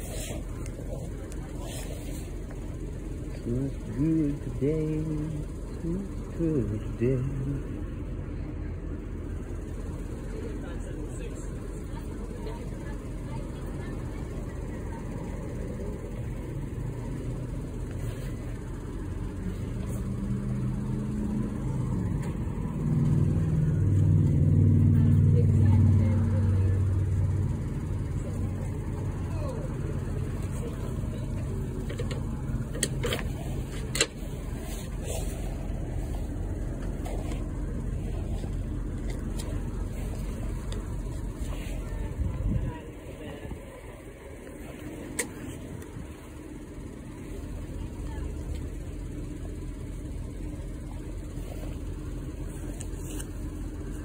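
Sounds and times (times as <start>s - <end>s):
car engine humming: 0.0s - 54.0s.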